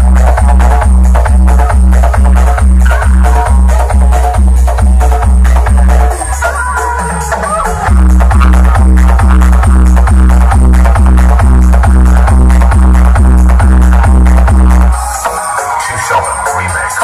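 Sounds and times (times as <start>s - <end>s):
heavy bass beat: 0.0s - 17.0s
loud electronic dance music: 0.0s - 17.0s.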